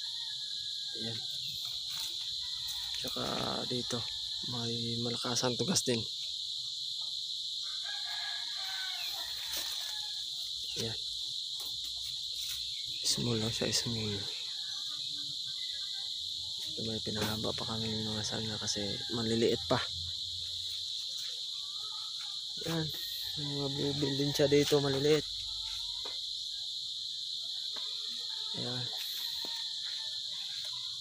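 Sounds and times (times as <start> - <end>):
high-pitched insect chorus: 0.0 - 31.0.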